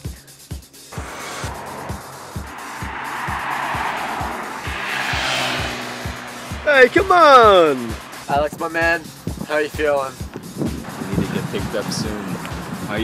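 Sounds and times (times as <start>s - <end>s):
car passing by: 0.9s - 12.9s.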